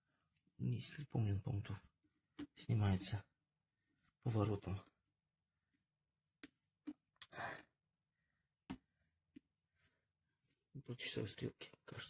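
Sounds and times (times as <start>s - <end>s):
short breath: 7.2s - 8.4s.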